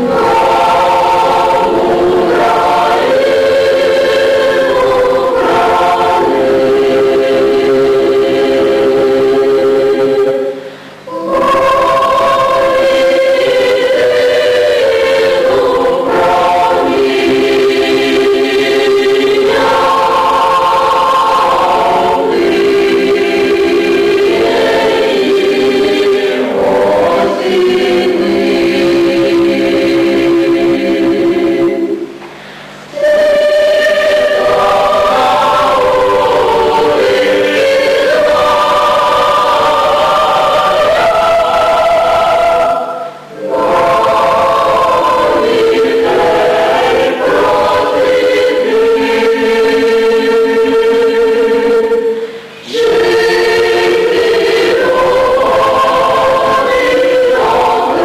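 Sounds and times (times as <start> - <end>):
choir singing folk song: 0.0 - 58.0.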